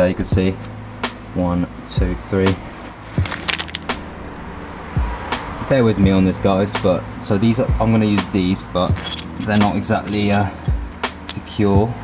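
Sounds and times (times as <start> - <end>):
steel parts clinking: 2.8 - 4.0, 8.8 - 11.6.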